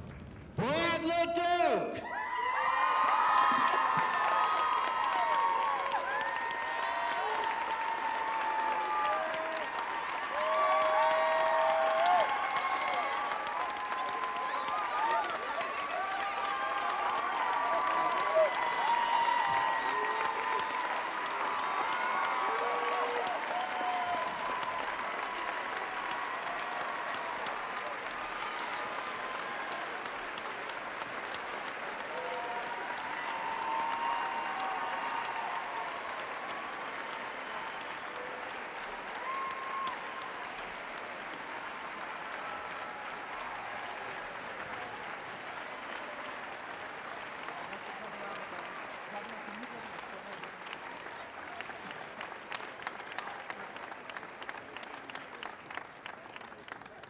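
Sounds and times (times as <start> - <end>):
audience applauding: 0.0 - 57.0.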